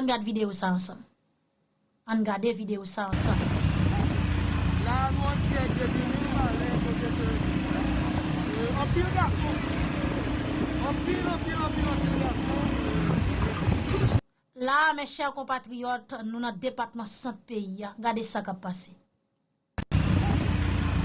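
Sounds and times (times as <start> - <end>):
vehicle engines rumbling: 3.2 - 14.2, 19.9 - 21.0
people calling out: 5.7 - 14.1.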